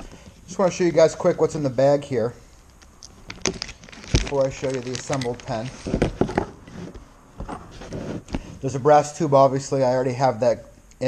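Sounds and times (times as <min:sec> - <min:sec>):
metal parts clicking on table: 0:02.7 - 0:06.2
plastic bag crinkling: 0:03.0 - 0:06.2.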